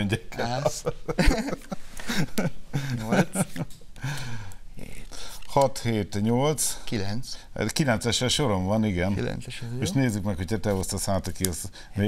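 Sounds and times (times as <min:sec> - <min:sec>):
man murmuring: 0:02.8 - 0:03.7.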